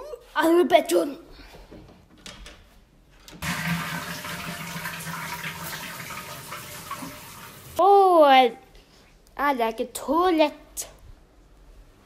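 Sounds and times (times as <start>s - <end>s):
toilet flushing: 3.4s - 7.8s.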